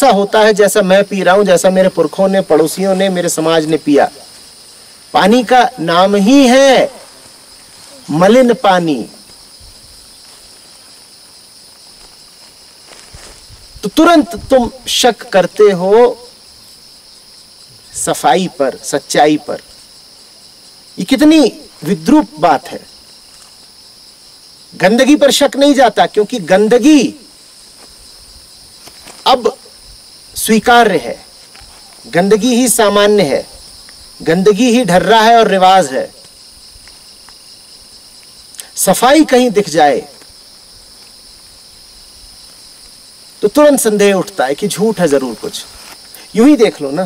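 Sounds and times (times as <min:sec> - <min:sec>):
man speaking: 0:00.0 - 0:04.3, 0:05.1 - 0:09.2, 0:13.8 - 0:16.3, 0:17.8 - 0:19.7, 0:21.0 - 0:22.9, 0:24.8 - 0:27.3, 0:29.3 - 0:29.7, 0:30.4 - 0:31.3, 0:32.0 - 0:33.6, 0:34.2 - 0:36.2, 0:38.7 - 0:40.2, 0:43.4 - 0:47.0
high-pitched insect chirring: 0:00.0 - 0:47.0.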